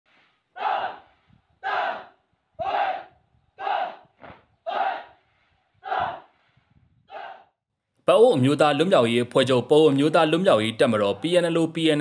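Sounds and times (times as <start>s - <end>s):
soldiers shouting in unison: 0.5s - 5.2s, 5.8s - 6.3s, 7.1s - 7.5s.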